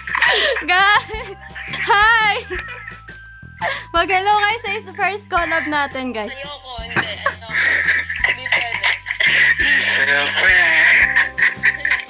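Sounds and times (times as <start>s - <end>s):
background music with bass line: 0.0s - 12.0s
loud high-pitched laughter: 1.5s - 3.1s.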